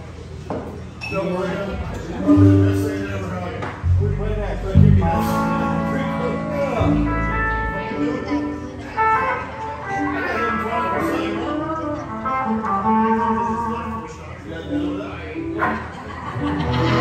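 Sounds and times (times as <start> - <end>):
live band music: 1.8 - 17.0
guitar held notes: 2.0 - 15.8.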